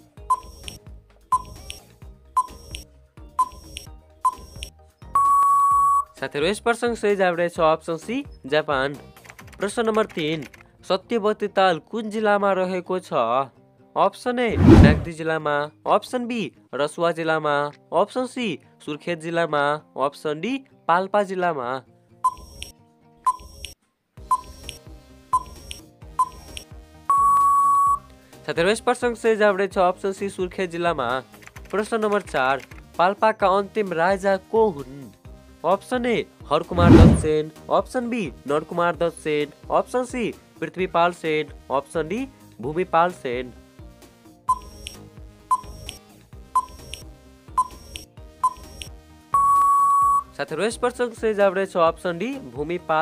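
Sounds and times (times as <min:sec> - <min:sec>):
background music: 0:00.0 - 0:53.0
short sharp timer beeps: 0:00.3 - 0:01.6, 0:02.4 - 0:02.8, 0:03.4 - 0:06.1, 0:22.3 - 0:22.7, 0:24.3 - 0:24.8, 0:25.4 - 0:25.6, 0:26.2 - 0:28.0, 0:44.5 - 0:46.0, 0:46.6 - 0:47.0, 0:47.6 - 0:50.3
short high beeps: 0:05.2 - 0:06.1, 0:27.1 - 0:28.0, 0:44.5 - 0:44.9, 0:45.5 - 0:45.8, 0:46.6 - 0:47.0, 0:47.6 - 0:48.8, 0:49.4 - 0:50.3.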